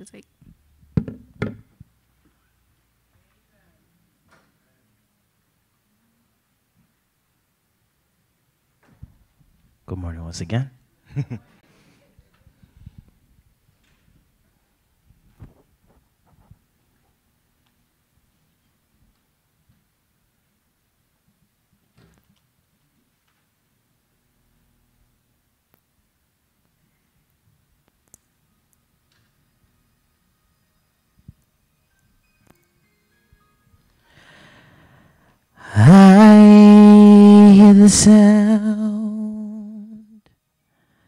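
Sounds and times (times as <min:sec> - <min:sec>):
microphone handling rustle: 0:15.1 - 0:16.6.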